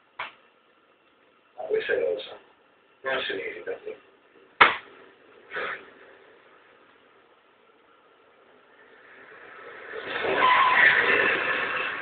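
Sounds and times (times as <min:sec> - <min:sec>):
car braking hard: 0:08.8 - 0:12.0
tyres squealing: 0:10.0 - 0:12.0.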